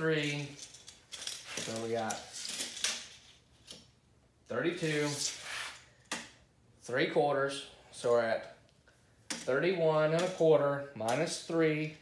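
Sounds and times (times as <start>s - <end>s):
tape measure blade rattling: 0.0s - 3.8s.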